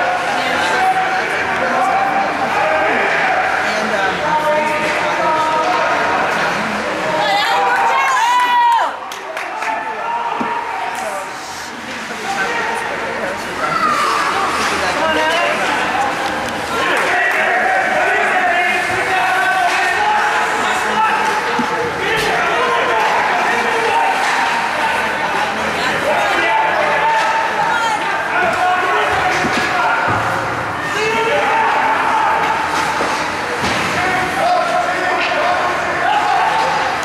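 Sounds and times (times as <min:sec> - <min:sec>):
puck and players hitting boards: 0:14.1 - 0:37.0.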